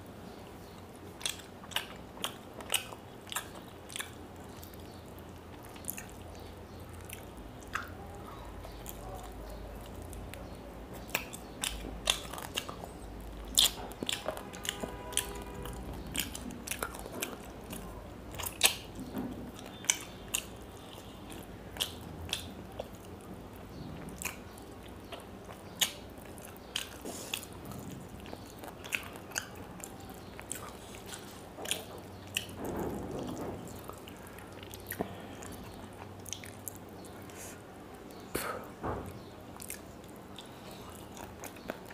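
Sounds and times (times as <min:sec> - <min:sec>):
chewing crunchy fried fish: 0:00.5 - 0:41.9
wet mouth clicks: 0:07.1 - 0:07.9.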